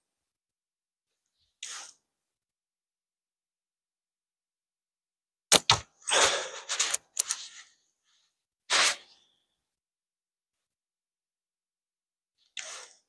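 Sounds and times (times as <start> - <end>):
slingshot bands snapping: 5.5 - 5.9.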